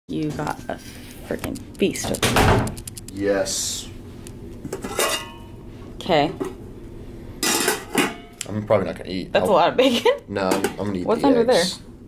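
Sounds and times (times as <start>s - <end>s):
metal plate cover clinking: 4.8s - 5.4s.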